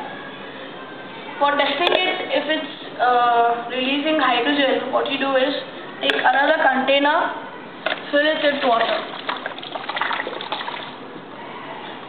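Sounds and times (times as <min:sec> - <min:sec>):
water pouring into plastic jug: 0:07.8 - 0:11.0.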